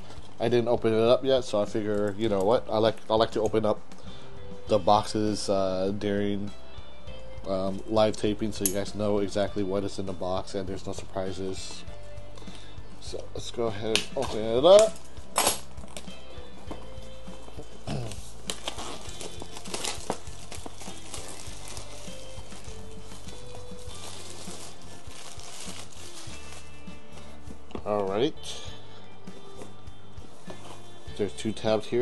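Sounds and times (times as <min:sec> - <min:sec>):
background music: 0:00.0 - 0:32.0
plastic shrink wrap crinkling: 0:17.8 - 0:27.1.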